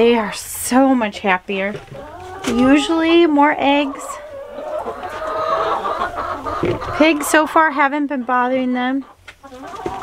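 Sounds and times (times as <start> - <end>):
chickens clucking: 1.2 - 10.0
drawn-out chicken call: 1.9 - 7.3, 9.1 - 10.0.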